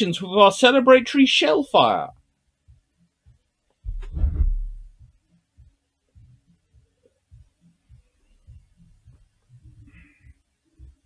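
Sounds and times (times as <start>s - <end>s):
low handling thuds: 3.8s - 5.1s.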